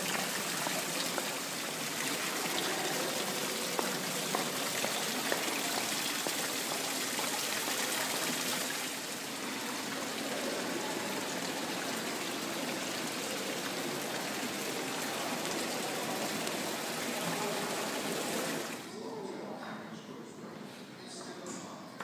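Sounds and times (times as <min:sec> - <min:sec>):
fountain water splashing into pool: 0:00.0 - 0:18.8.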